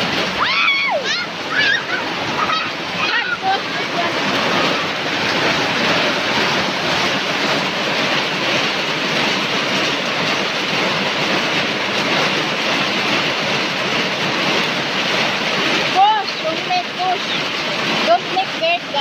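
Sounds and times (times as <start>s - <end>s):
heavy rain pouring: 0.0s - 19.0s.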